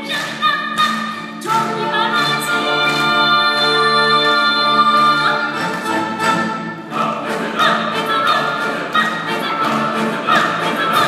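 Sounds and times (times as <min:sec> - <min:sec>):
woman singing high notes: 0:00.0 - 0:06.6
orchestra playing: 0:00.0 - 0:11.0.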